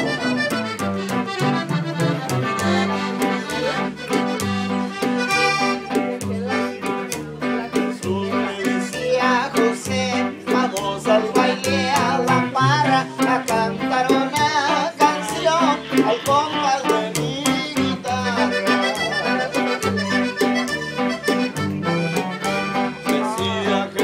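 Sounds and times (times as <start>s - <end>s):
accordion: 0.0s - 24.0s
guitar: 0.0s - 24.0s
upright bass: 0.0s - 24.0s.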